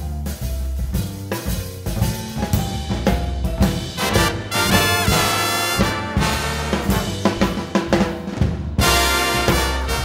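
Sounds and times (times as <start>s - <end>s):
big band swing jazz: 0.0s - 10.0s
drum kit hits: 0.0s - 10.0s.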